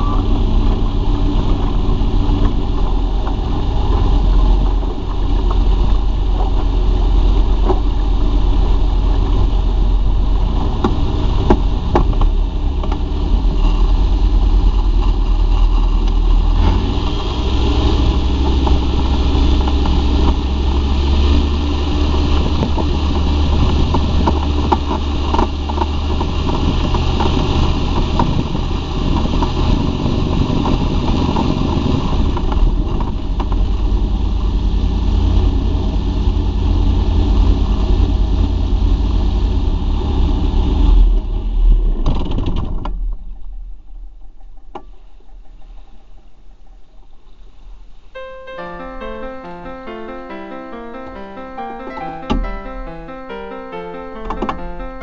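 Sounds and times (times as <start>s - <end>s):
seaplane engine and propeller running: 0.0s - 41.6s.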